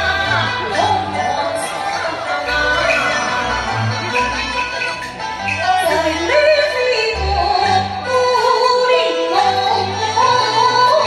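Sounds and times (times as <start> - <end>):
instrumental accompaniment: 0.0 - 11.0
low bass notes: 0.0 - 11.0.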